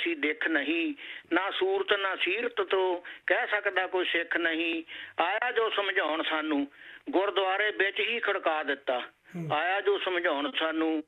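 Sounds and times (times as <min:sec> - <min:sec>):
person reciting verse: 0:09.3 - 0:09.7.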